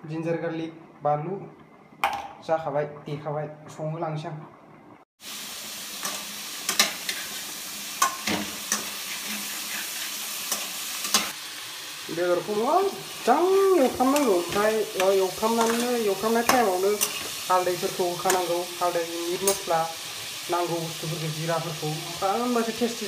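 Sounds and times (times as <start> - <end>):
food sizzling in a pan: 5.2 - 23.0
spatula scraping a pan: 8.0 - 11.4
person speaking: 12.1 - 23.0.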